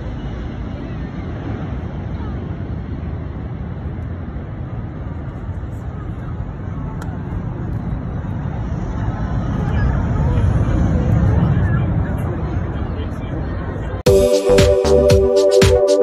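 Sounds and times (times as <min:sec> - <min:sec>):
jet aircraft engines rumbling: 0:00.0 - 0:15.0
crowd chattering: 0:05.0 - 0:16.0.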